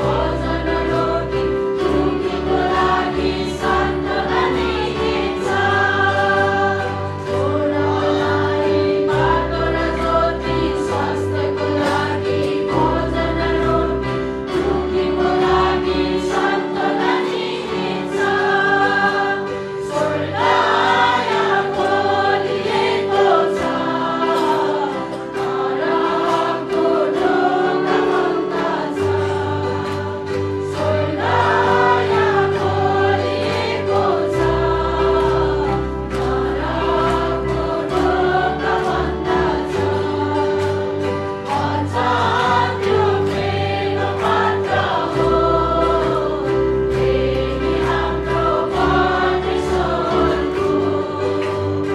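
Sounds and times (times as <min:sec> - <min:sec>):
women singing a hymn: 0:00.0 - 0:51.9.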